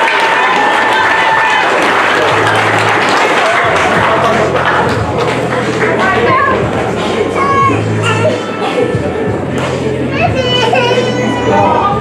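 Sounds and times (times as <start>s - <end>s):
crowd chatter: 0.0s - 12.0s
background music with bass: 1.8s - 12.0s
children's voices: 5.8s - 9.0s, 9.9s - 12.0s.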